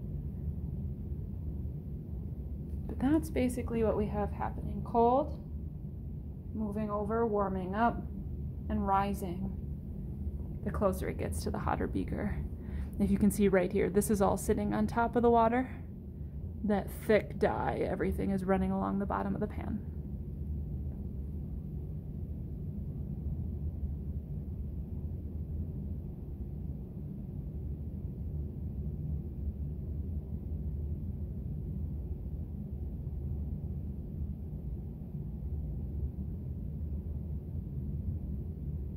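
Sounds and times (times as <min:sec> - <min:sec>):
room hum and rumble: 0:00.0 - 0:38.9.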